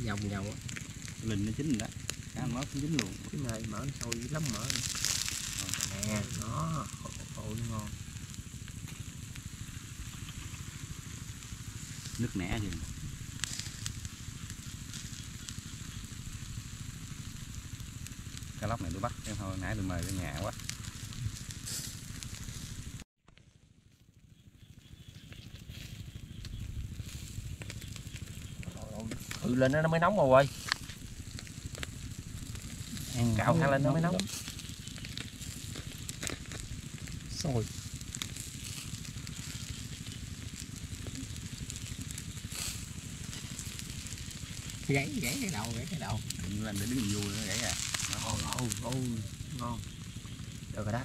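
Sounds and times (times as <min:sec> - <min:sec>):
steady low rumble: 0:00.0 - 0:23.0, 0:24.4 - 0:51.0
embers crackling: 0:00.0 - 0:51.0
fish sizzling over charcoal: 0:00.0 - 0:51.0.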